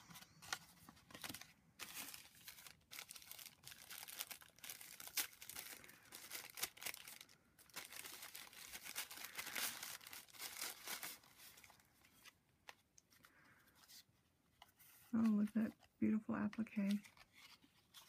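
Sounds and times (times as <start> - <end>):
paper crinkling and rustling: 0.0 - 18.0.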